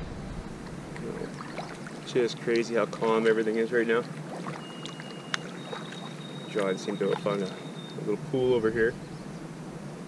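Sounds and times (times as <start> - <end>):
high steady whistling tones: 4.5 - 9.3.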